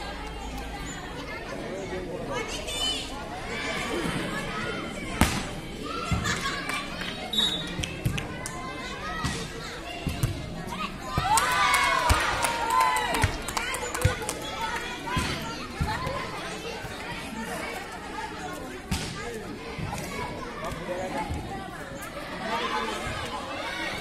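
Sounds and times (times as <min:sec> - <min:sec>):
many voices shouting together: 0:11.2 - 0:13.3.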